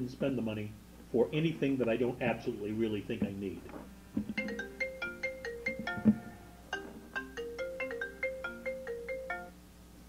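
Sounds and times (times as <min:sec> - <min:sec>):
marimba phone ringtone: 0:04.3 - 0:09.6.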